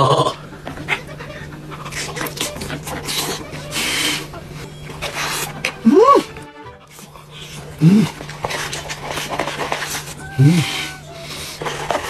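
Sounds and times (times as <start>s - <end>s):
chewing: 0.0s - 12.0s
breathing: 6.8s - 12.0s.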